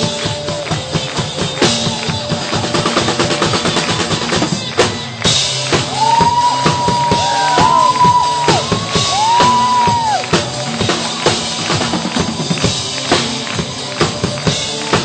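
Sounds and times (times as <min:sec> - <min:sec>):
drum kit groove: 0:00.0 - 0:15.0.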